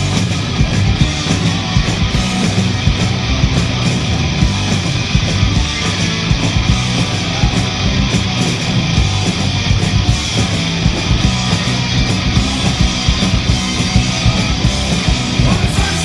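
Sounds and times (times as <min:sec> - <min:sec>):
punk rock band playing live: 0:00.0 - 0:16.0.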